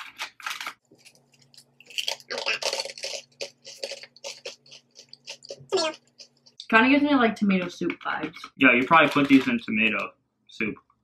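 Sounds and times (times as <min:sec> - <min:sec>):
crunchy snack being chewed: 0:00.0 - 0:06.6.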